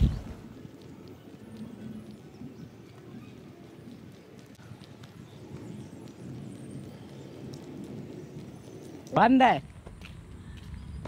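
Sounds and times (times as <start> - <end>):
footsteps on concrete: 0.1 - 11.0.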